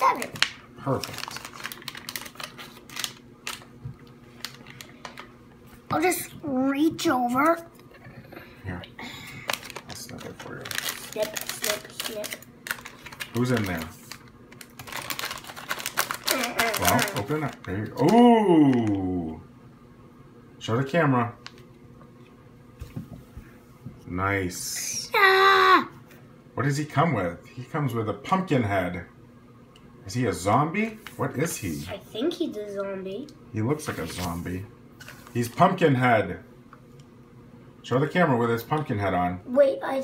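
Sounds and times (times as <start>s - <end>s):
foil packets crinkling: 0.0s - 5.3s, 9.3s - 19.1s
person speaking: 16.2s - 19.4s.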